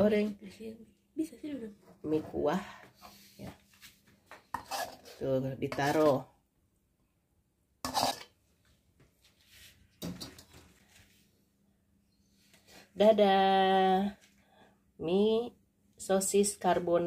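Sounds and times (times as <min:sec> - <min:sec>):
metal spatula scraping a wok: 0:04.5 - 0:06.2, 0:07.8 - 0:08.4.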